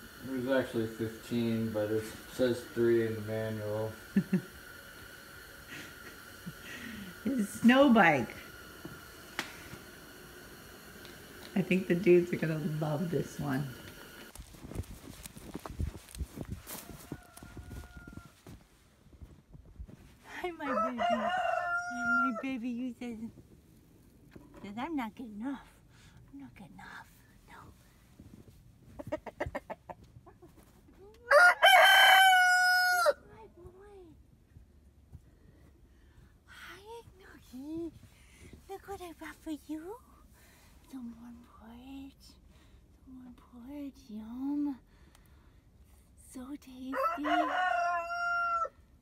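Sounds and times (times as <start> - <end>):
thin steady hum: 0.0 - 29.0
rooster crowing: 16.6 - 18.6, 20.6 - 22.6, 31.3 - 33.2, 46.9 - 48.9.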